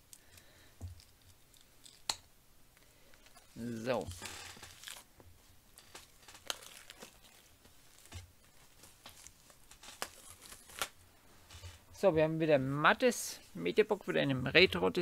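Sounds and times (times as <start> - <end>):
plastic shrink-wrap crinkling and tearing: 3.2 - 11.0.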